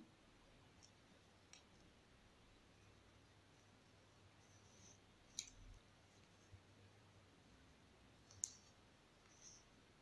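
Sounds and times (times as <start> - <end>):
soft brush of yarn: 3.4 - 6.7, 8.6 - 10.0.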